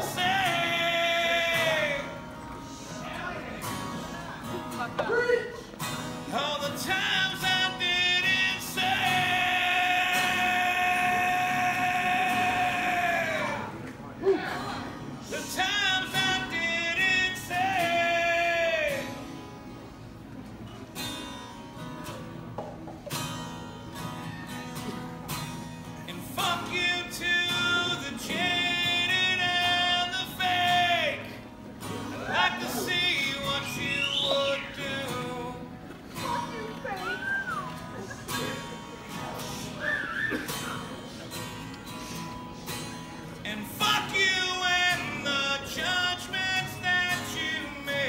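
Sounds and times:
man singing: 0.0s - 3.9s, 6.2s - 19.3s, 26.0s - 36.4s, 43.4s - 48.0s
strummed acoustic guitar: 0.0s - 48.0s.

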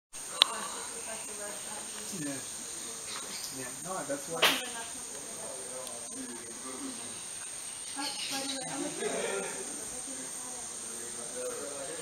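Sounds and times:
high-pitched insect drone: 0.2s - 12.0s
people talking: 0.2s - 12.0s.

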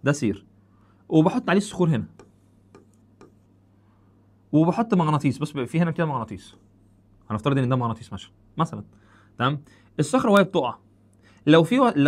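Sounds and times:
low steady hum: 0.0s - 12.0s
pen tapping on whiteboard screen: 2.1s - 3.5s.

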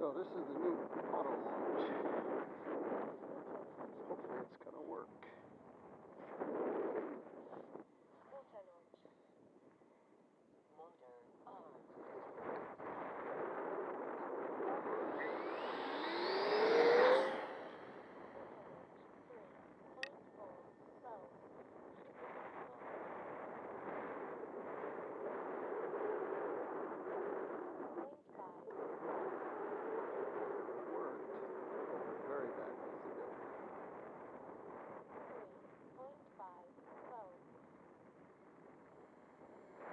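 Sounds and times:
airflow rushing over camera: 11.9s - 18.9s
rising whine: 12.2s - 20.8s.

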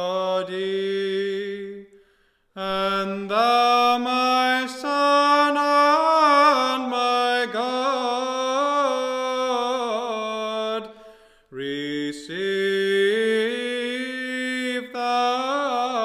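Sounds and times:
person chanting a hymn: 0.0s - 2.0s, 2.6s - 16.0s.

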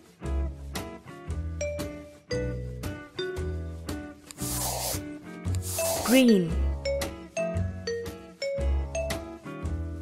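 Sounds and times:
background music with bell notes: 1.2s - 4.2s, 6.3s - 10.0s
scratchy paintbrush strokes: 4.3s - 5.0s, 5.6s - 6.4s.

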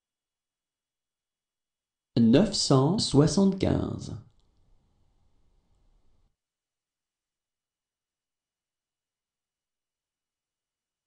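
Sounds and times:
person speaking: 2.2s - 4.2s
faint room hiss: 2.2s - 6.4s.

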